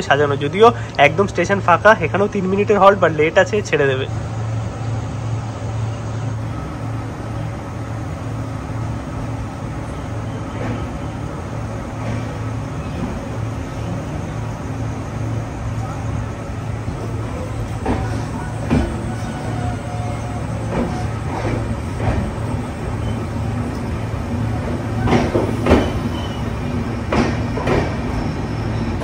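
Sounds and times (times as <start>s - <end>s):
train running noise: 0.0s - 29.0s.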